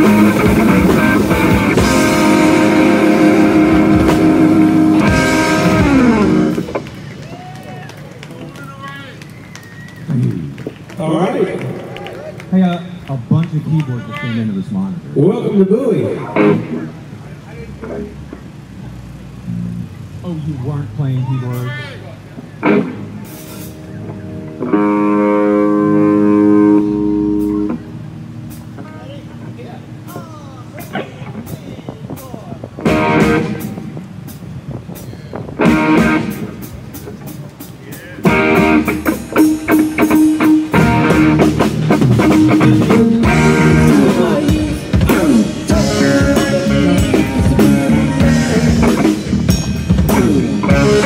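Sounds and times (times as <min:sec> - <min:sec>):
rock band with electric guitars: 0:00.0 - 0:20.2, 0:21.2 - 0:51.0
low stage noise: 0:00.0 - 0:51.0
faint voices: 0:28.6 - 0:38.8, 0:43.9 - 0:51.0.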